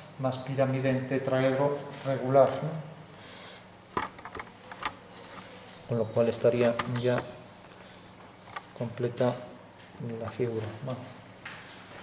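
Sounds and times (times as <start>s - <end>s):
faint steady hum: 0.0s - 12.0s
man speaking: 0.2s - 3.0s, 8.8s - 11.2s.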